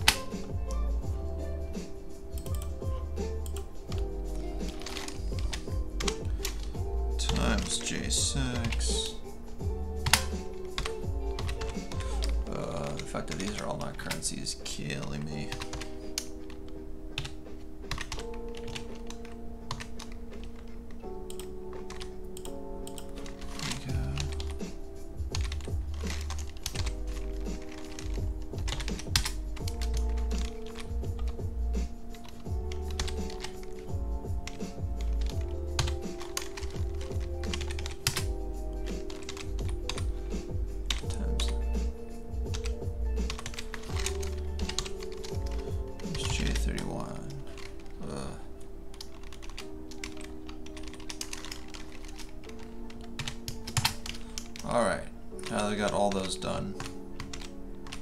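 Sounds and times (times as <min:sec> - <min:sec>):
keyboard typing: 0:00.0 - 0:00.8, 0:01.8 - 0:58.0
music with deep bass: 0:00.0 - 0:01.8, 0:02.4 - 0:08.8, 0:23.8 - 0:33.3, 0:33.9 - 0:46.8.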